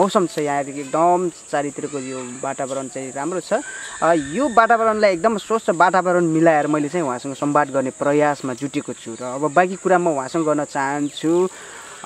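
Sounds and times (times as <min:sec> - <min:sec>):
insects chirring: 0:00.0 - 0:12.0.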